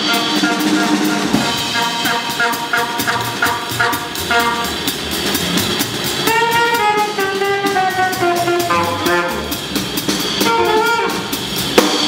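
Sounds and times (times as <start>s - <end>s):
alto saxophone: 0.0s - 5.2s, 6.1s - 11.6s
cymbal-led drums: 0.0s - 12.0s
double bass: 0.0s - 12.0s.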